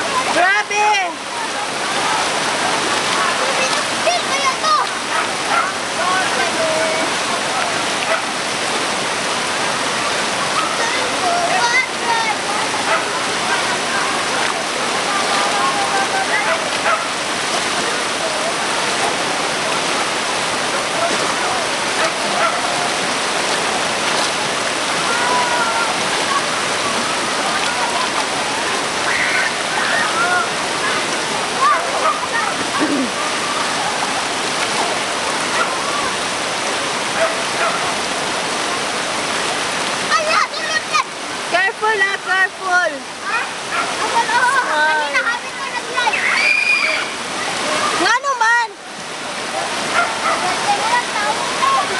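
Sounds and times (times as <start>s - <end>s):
floodwater rushing: 0.0s - 51.9s.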